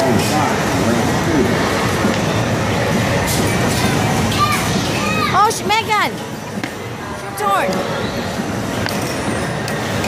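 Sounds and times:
arcade machines running: 0.0s - 10.0s.

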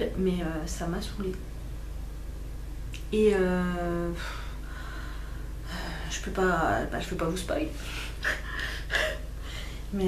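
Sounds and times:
woman speaking: 0.0s - 1.4s, 3.0s - 4.4s, 5.7s - 9.1s.

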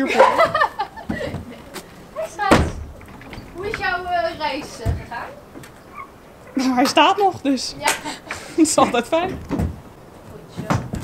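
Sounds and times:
trailer ramp landing with thud: 2.1s - 5.8s.

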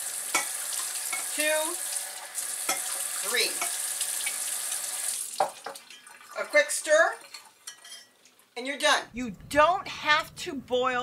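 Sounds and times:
tap water pouring into a glass cup: 0.2s - 6.4s.

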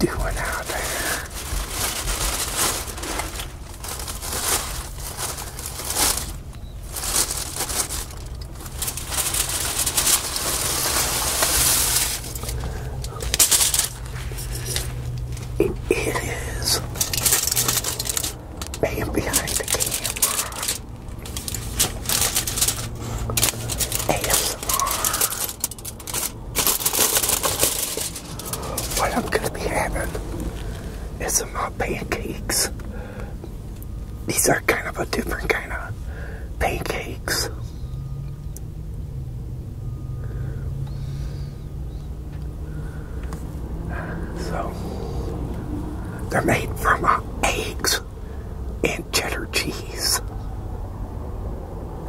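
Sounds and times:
steady low hum: 0.0s - 52.0s
aluminum foil crinkling and tearing: 0.2s - 30.9s.

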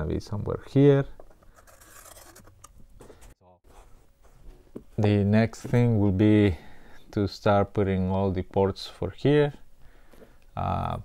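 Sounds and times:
pen scratching cardboard: 1.6s - 2.6s.

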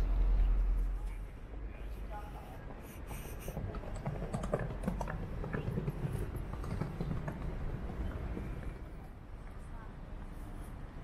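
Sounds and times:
city background noise: 0.0s - 11.0s.

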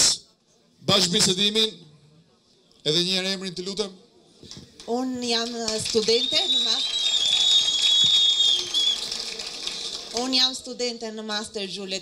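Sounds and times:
background noise: 0.0s - 12.0s
applause: 4.8s - 10.6s
microphone feedback whistle: 6.1s - 9.1s.

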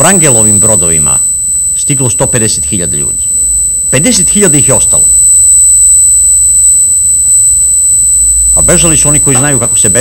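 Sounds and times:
high-pitched electronic whine: 0.0s - 10.0s
loud low hum: 0.5s - 9.9s.

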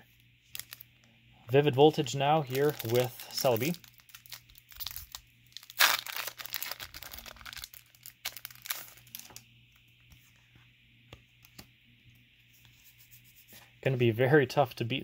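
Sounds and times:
foil wrapper ripping: 0.5s - 0.8s, 2.4s - 9.4s
foil wrapper crinkling: 0.5s - 0.9s, 1.9s - 9.4s.

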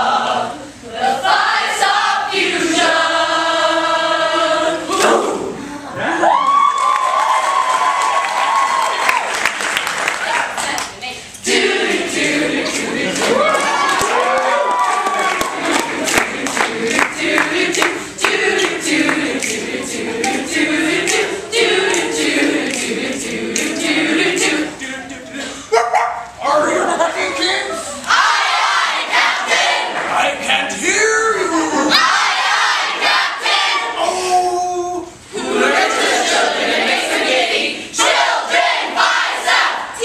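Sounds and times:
young people singing together: 0.0s - 6.1s, 10.6s - 25.9s, 27.5s - 34.4s, 35.0s - 40.0s
crowd cheering and clapping: 6.0s - 11.0s, 12.6s - 19.6s.

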